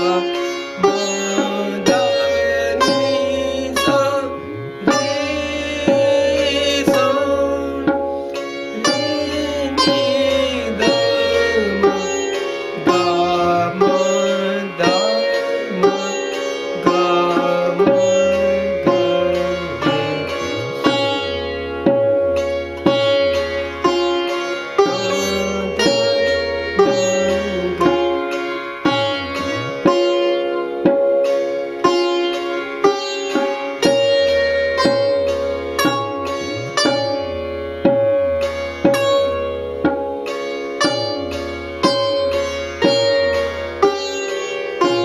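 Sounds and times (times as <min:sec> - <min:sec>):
sitar melody over drone: 0:00.0 - 0:45.0.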